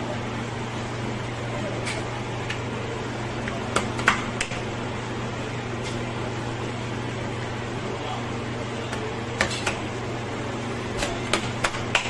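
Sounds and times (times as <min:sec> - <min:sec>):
ventilation fan humming: 0:00.0 - 0:12.0.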